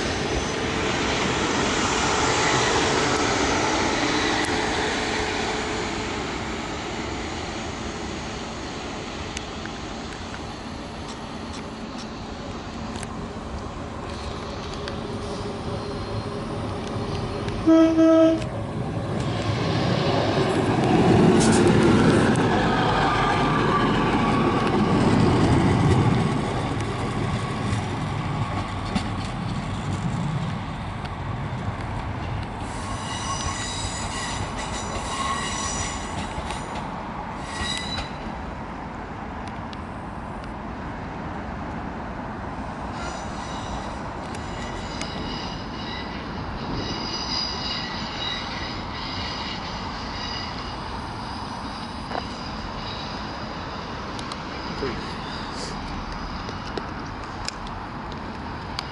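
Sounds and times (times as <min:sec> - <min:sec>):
diesel train passing: 0:00.0 - 0:58.9
train wheels squealing: 0:14.1 - 0:18.4, 0:32.6 - 0:38.4, 0:42.9 - 0:56.8.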